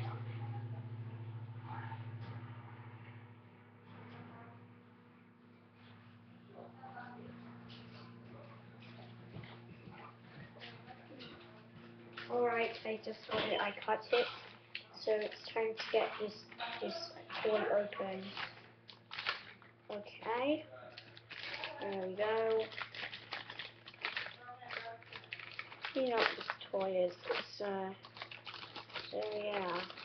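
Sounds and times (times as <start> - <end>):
low electrical hum: 0.0 - 30.0
footsteps crossing a room: 7.2 - 17.0
child murmuring: 15.1 - 18.3
plastic packaging crinkling: 18.1 - 19.6, 20.9 - 30.0.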